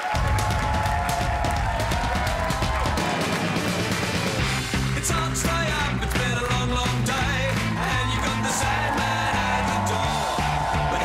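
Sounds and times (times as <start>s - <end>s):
up-tempo rock music: 0.2s - 11.0s.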